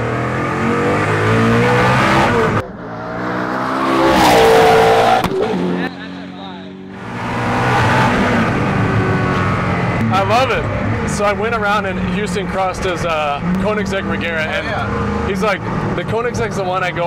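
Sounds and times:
sports car engine at speed: 0.0 - 17.0.

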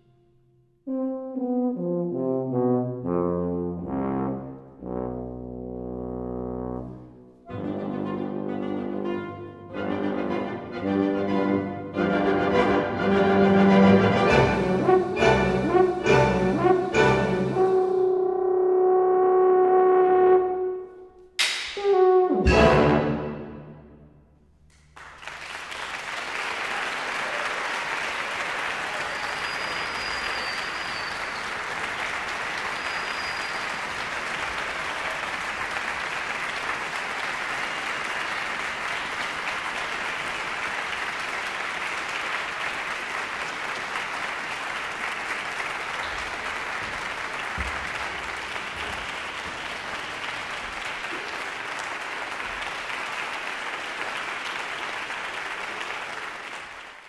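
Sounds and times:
audience applauding: 24.7 - 57.0.

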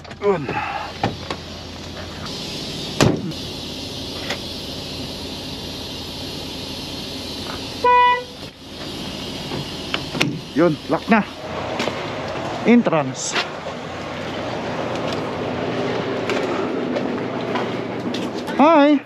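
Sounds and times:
steady background hum: 0.0 - 19.0
truck door slamming: 2.3 - 4.5, 9.4 - 10.6
truck horn toot: 7.8 - 8.5.

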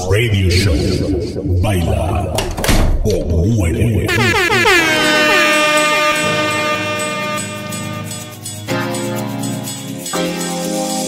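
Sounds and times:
synthesized horn-like sweep: 4.1 - 8.7.

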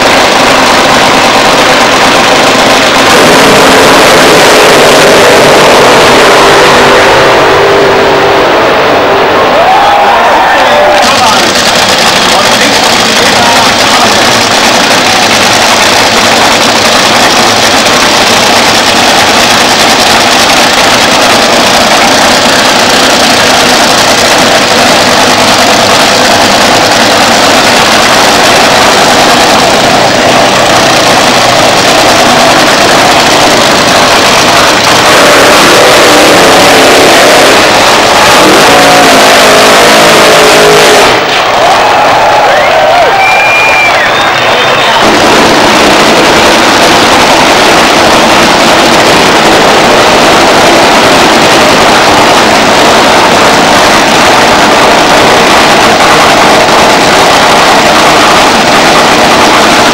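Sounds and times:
dragster engine running loud: 0.0 - 59.9.

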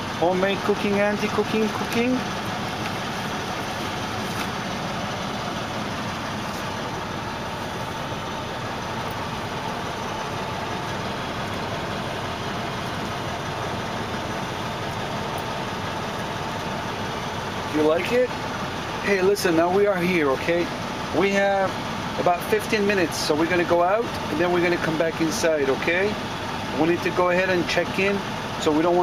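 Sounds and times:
truck engine idling: 0.0 - 29.0.

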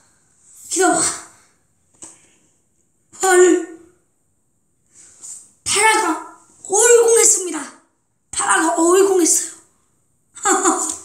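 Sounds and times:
child exclaiming: 0.7 - 1.3, 3.2 - 3.8, 5.7 - 7.8, 8.4 - 9.6, 10.4 - 11.0.

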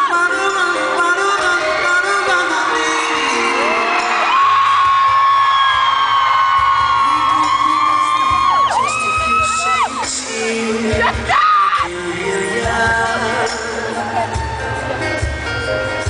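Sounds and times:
live pop band playing: 0.0 - 16.0
audience whooping: 1.3 - 10.2, 13.9 - 15.1.

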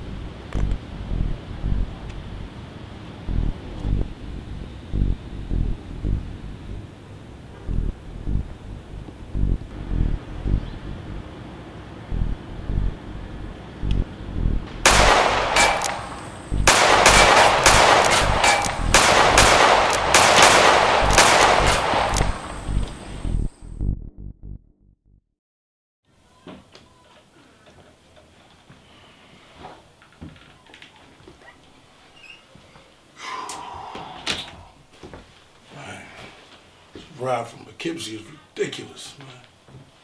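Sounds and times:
low regular thudding: 0.0 - 2.6, 3.2 - 6.9, 7.6 - 11.3, 12.1 - 24.7
gunshots in rapid volley: 14.9 - 22.4.

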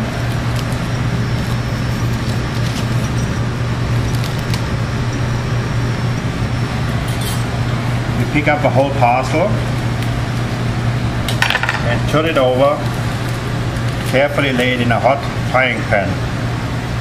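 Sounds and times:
ventilation hum: 0.0 - 17.0
parchment paper rustling: 0.1 - 4.8.

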